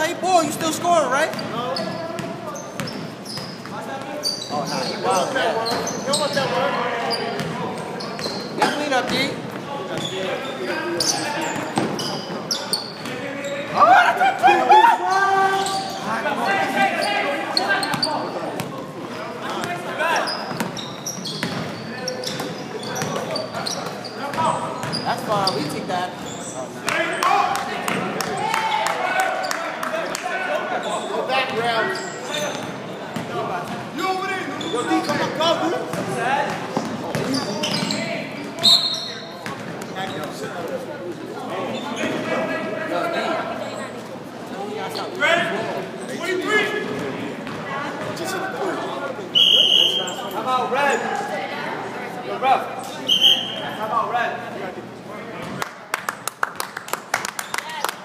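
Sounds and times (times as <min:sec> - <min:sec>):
players calling out: 0:00.0 - 0:39.3.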